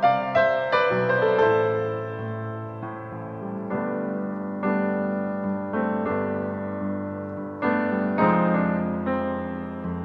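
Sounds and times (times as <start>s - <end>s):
slow piano chords: 0.0s - 10.0s.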